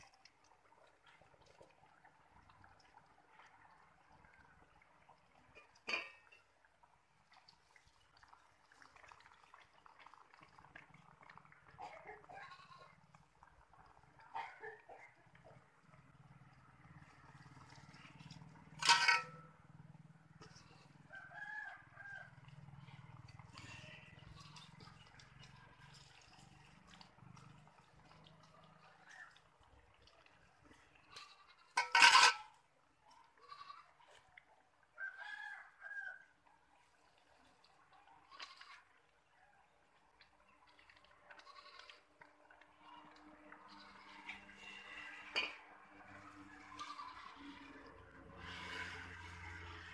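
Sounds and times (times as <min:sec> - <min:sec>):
dough crackling in hot oil: 0:00.0 - 0:14.3, 0:15.2 - 0:33.1, 0:36.9 - 0:49.9
farm animal calls: 0:46.6 - 0:47.6.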